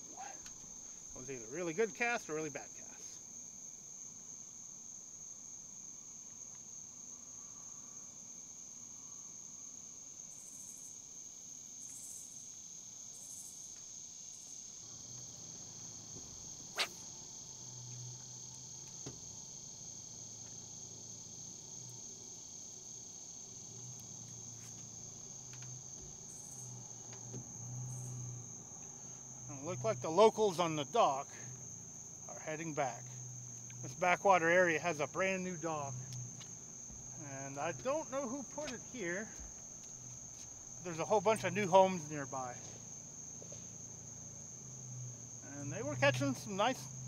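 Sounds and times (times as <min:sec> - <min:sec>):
crickets chirping: 0:00.0 - 0:47.0
faint low hum: 0:14.8 - 0:47.0.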